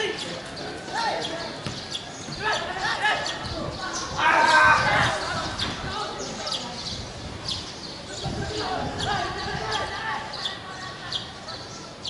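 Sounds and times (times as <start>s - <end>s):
distant voices calling out: 0.0s - 12.0s
bird chirping: 0.1s - 4.2s, 5.0s - 12.0s.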